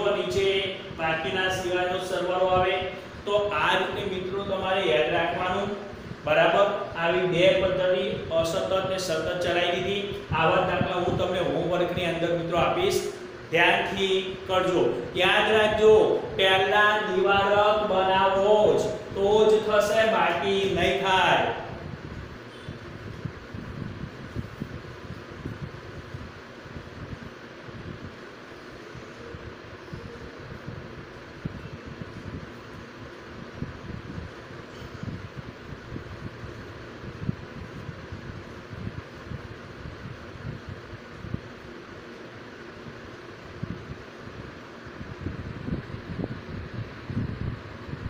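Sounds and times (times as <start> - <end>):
faint steady hum: 0.0 - 48.0
low room rumble: 0.0 - 48.0.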